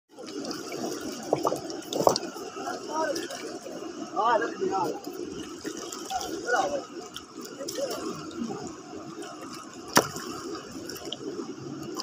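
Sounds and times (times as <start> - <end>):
river water sloshing: 0.1 - 12.0
loud water splashes: 0.2 - 12.0.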